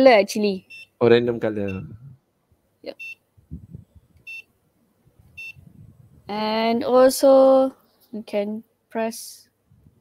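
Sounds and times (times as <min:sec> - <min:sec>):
short high electronic beeps: 0:01.7 - 0:02.0, 0:04.2 - 0:04.5, 0:05.4 - 0:05.8.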